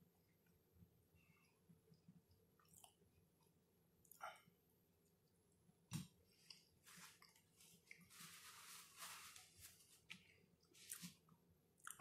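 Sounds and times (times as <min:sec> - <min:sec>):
mouth clicks and wet smacking: 0:01.9 - 0:03.1, 0:04.0 - 0:04.3, 0:11.8 - 0:12.0
person chewing food: 0:01.9 - 0:04.4, 0:10.1 - 0:12.0.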